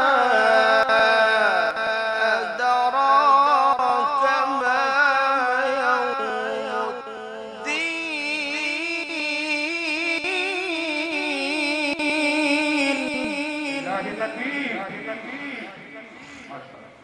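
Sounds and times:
man reciting melodically: 0.0s - 17.0s.

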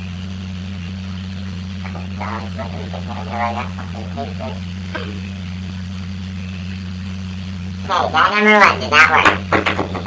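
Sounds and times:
low electrical hum: 0.0s - 10.0s
person speaking: 1.8s - 5.4s.

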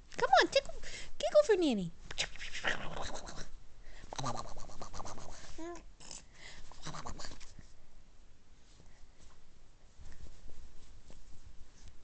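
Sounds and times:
scratching against microphone: 2.1s - 5.8s, 6.7s - 7.7s.

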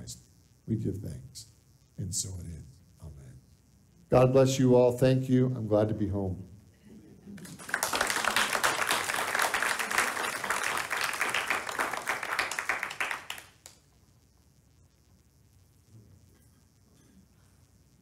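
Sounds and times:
congregation applauding: 7.4s - 13.8s.

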